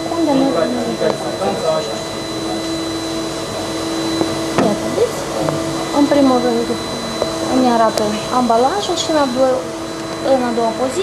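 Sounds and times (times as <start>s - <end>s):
laboratory equipment whirring: 0.0s - 11.0s.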